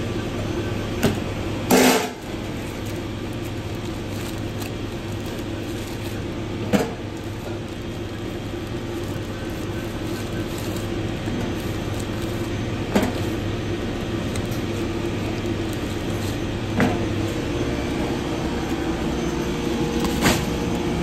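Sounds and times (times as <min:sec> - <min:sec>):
kitchen ventilation hum: 0:00.0 - 0:21.0.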